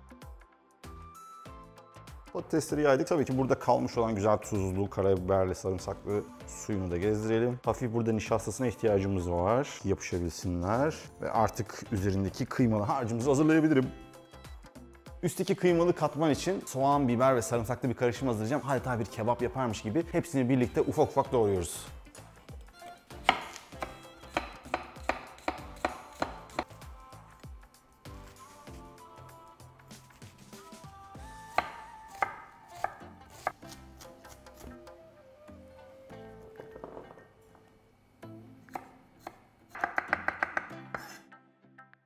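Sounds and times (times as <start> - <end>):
knife chopping on wooden board: 23.2 - 26.7, 31.5 - 34.6, 38.7 - 41.2.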